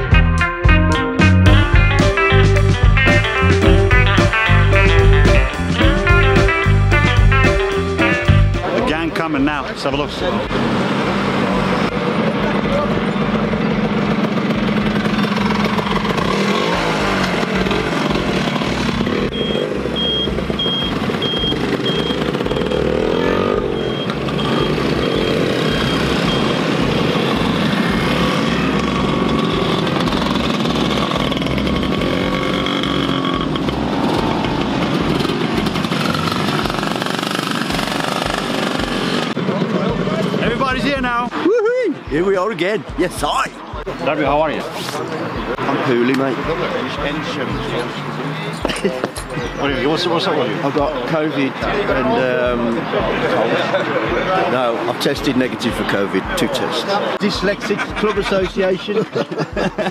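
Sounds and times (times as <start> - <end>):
voices: 3.0 - 37.1, 38.8 - 59.9
motor scooters riding past: 10.8 - 40.6.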